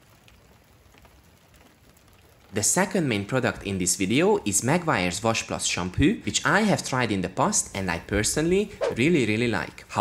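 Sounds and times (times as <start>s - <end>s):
water drops pattering on car paint: 0.0s - 4.2s.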